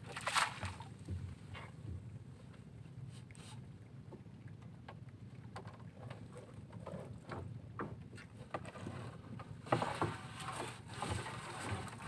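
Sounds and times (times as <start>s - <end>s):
wind and water rumble: 0.0s - 12.0s.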